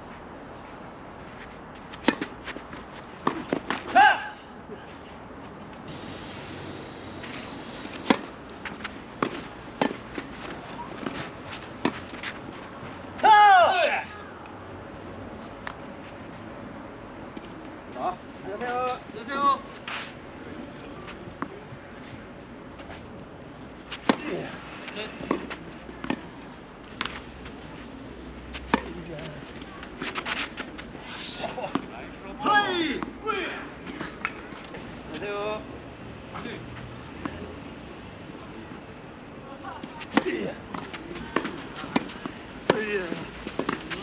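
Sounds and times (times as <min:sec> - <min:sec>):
tennis racket hitting ball: 0:07.9 - 0:08.3
tennis ball bouncing: 0:07.9 - 0:12.0.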